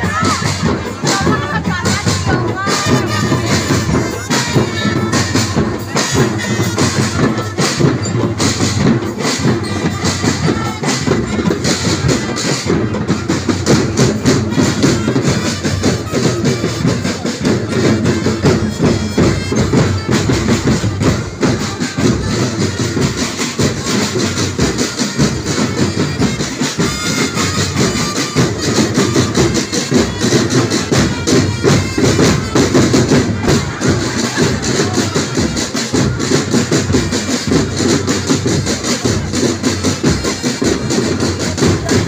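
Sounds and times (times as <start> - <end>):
snare and bass drums beating: 0.0 - 42.0.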